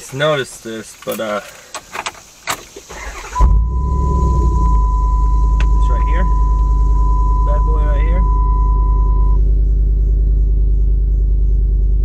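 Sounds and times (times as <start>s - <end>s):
truck engine idling: 2.9s - 12.0s
steady high tone: 3.2s - 9.4s.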